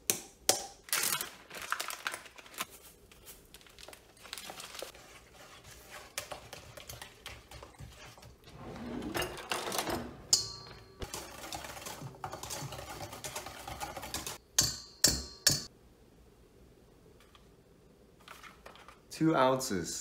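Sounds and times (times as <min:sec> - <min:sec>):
metal bowl clanking: 0:09.0 - 0:15.7.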